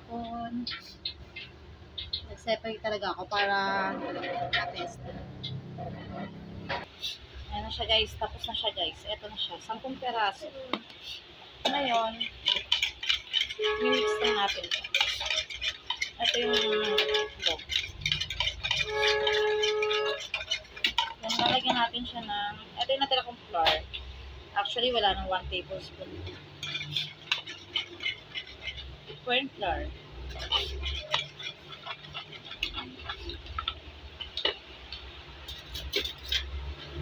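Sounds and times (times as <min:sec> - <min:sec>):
fork clinking against bowl: 0:11.7 - 0:21.8, 0:26.6 - 0:28.9, 0:30.3 - 0:33.8.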